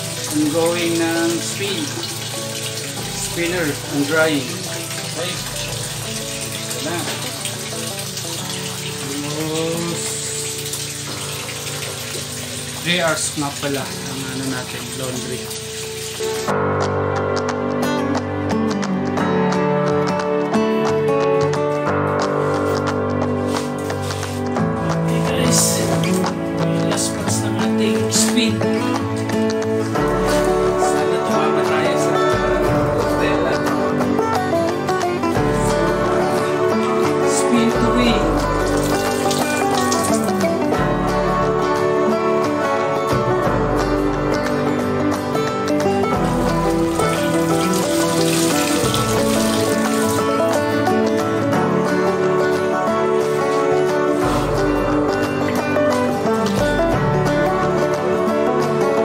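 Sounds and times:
water rushing through drain: 0.0s - 17.2s, 22.4s - 59.0s
instrumental background music: 0.0s - 59.0s.

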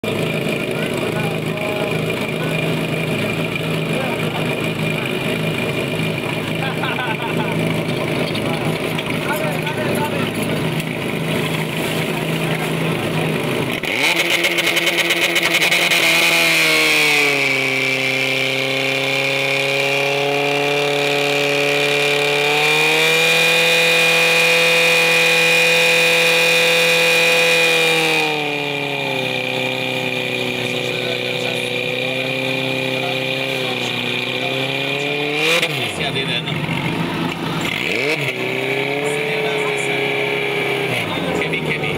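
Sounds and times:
pump engine running and revving: 0.0s - 41.9s.

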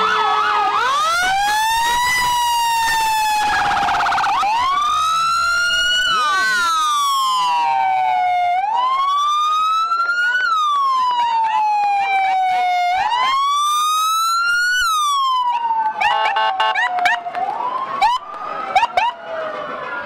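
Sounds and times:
emergency sirens wailing: 0.0s - 20.0s
rapid siren warble: 0.9s - 8.3s.

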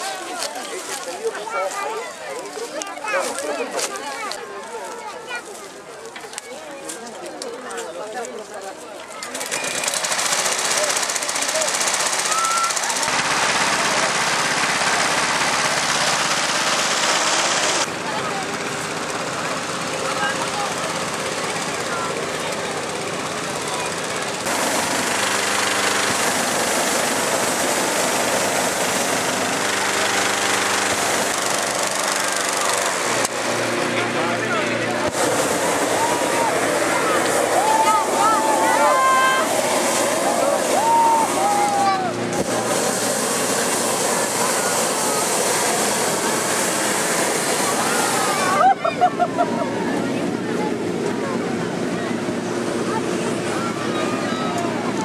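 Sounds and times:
engine-driven inflator fan: 9.2s - 55.0s.

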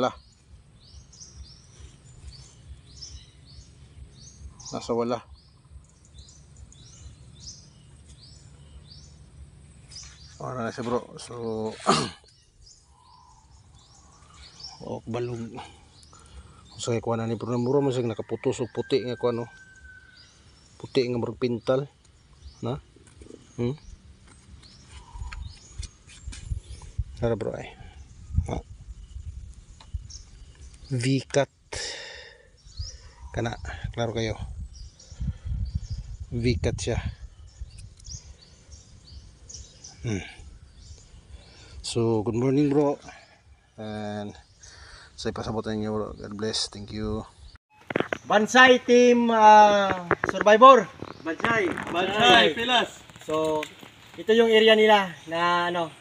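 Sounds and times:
bird chirping: 0.0s - 56.0s
outdoor background noise: 0.0s - 56.0s.

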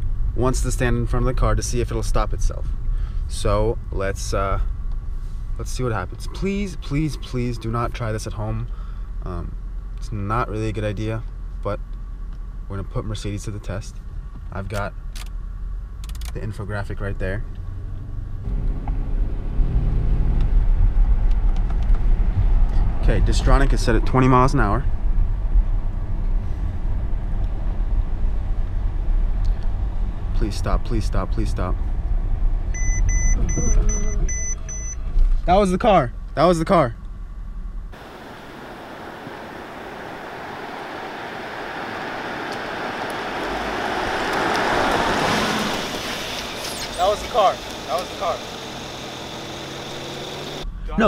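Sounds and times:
car tyres rushing on asphalt: 17.4s - 34.0s, 37.9s - 50.7s
car engine rumble inside cabin: 31.2s - 36.4s, 37.0s - 51.0s.

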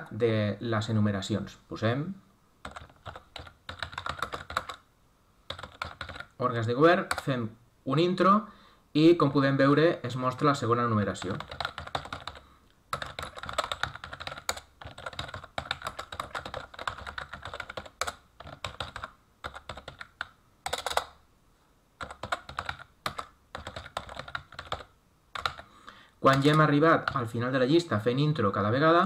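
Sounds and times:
keyboard typing clicks: 2.6s - 4.8s, 5.5s - 6.4s, 7.1s - 7.3s, 11.2s - 21.2s, 22.0s - 25.6s, 26.3s - 27.2s.

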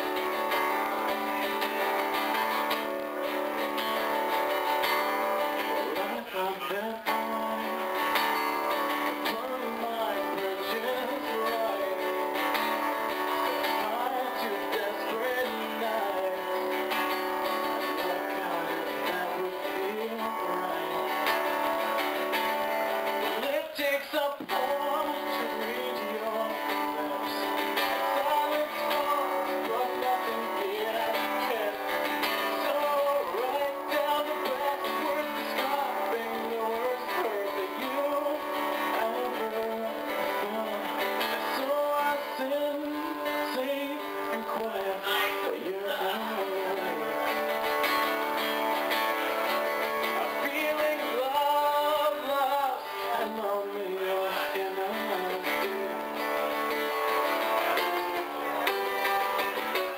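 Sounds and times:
acoustic guitar strummed: 0.0s - 59.9s
man singing: 0.0s - 59.9s.

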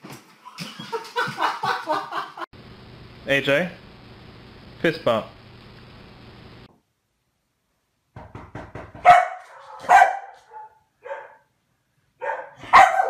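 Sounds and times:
dog barking: 9.0s - 11.5s, 12.2s - 13.0s.

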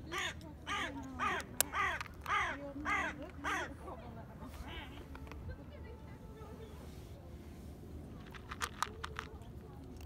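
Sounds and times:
crow cawing: 0.1s - 3.7s.

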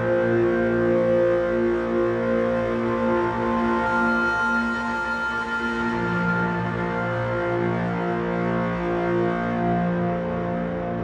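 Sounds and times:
ambient music with held tones: 0.0s - 11.0s.

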